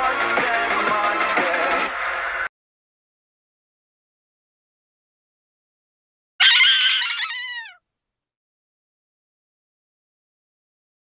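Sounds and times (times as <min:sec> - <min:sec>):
high-pitched shriek: 0:06.4 - 0:07.8.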